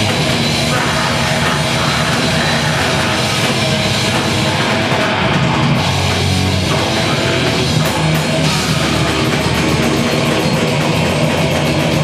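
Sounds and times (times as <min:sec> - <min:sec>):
distorted guitars and bass: 0:00.0 - 0:12.0
fast drumming: 0:00.0 - 0:12.0.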